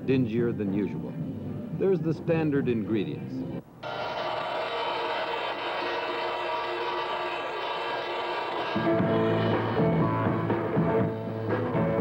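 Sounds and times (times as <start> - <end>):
cymbal roll: 3.8 - 10.7
band with bass and drums: 8.8 - 12.0.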